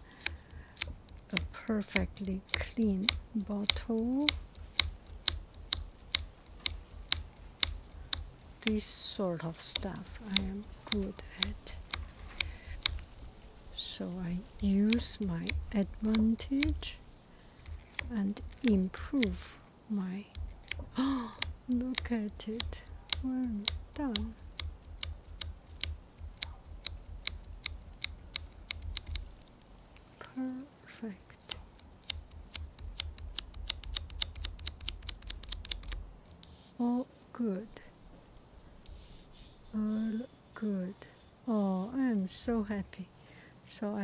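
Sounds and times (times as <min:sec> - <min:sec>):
steady ticking clicks: 0:00.0 - 0:19.5, 0:20.2 - 0:30.4, 0:31.2 - 0:36.5
low handling rumble: 0:00.0 - 0:36.4.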